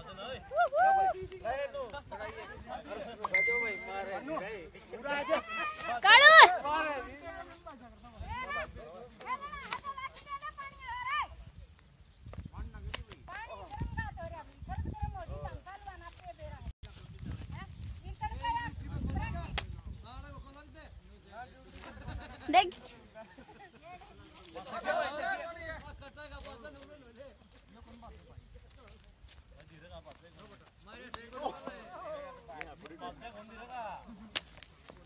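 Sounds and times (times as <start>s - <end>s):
voices shouting: 5.0s - 7.6s
people calling out: 5.1s - 6.9s
wind on microphone: 11.3s - 21.1s.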